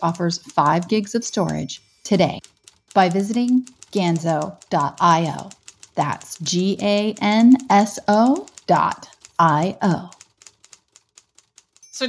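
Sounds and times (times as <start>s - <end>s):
typing on keyboard: 0.1s - 1.8s, 2.4s - 11.9s.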